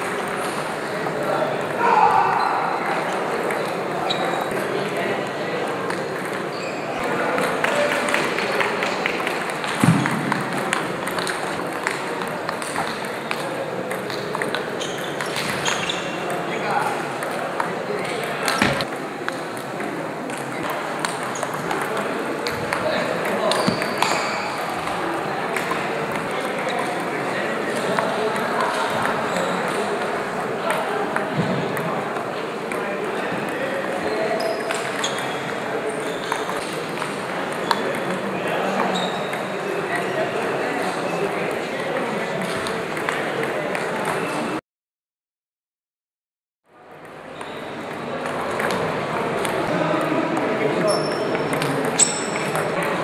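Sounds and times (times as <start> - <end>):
hubbub of voices: 0.0 - 44.6, 46.7 - 53.0.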